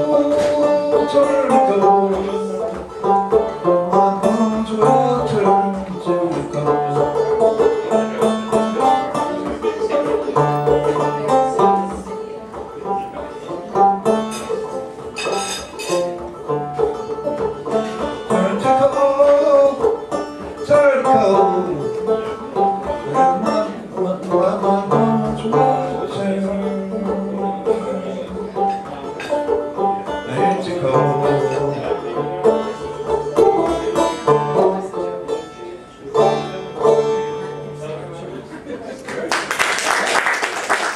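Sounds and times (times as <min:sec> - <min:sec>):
banjo playing: 0:00.0 - 0:39.0.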